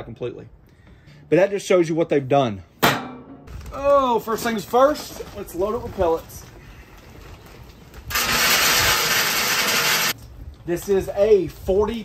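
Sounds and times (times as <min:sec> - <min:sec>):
wood pellets pouring: 0:08.1 - 0:10.2.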